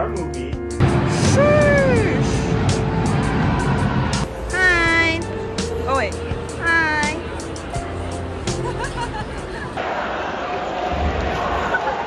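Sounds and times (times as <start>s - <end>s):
music playing: 0.0s - 9.9s
person calling out: 4.5s - 5.3s, 5.9s - 7.2s
arena crowd noise: 6.6s - 12.0s.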